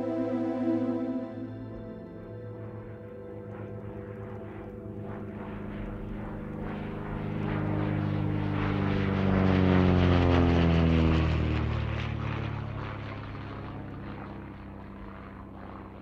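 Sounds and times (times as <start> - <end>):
low humming electronic drone: 0.0 - 10.2.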